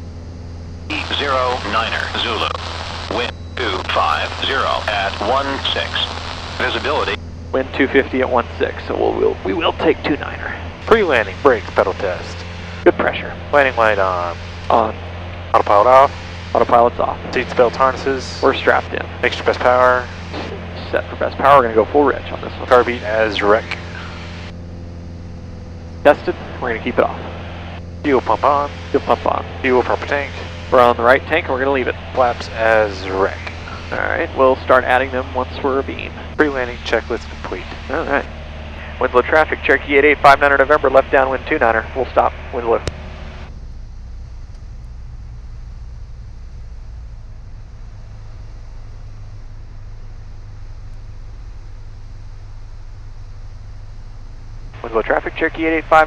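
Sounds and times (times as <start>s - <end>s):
aircraft engine and propeller drone: 0.0s - 56.0s
faint airflow hiss: 0.9s - 24.6s, 26.1s - 56.0s.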